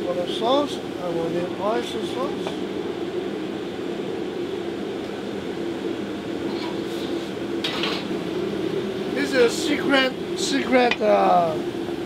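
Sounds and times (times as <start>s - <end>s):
ventilation fan drone: 0.0s - 12.0s.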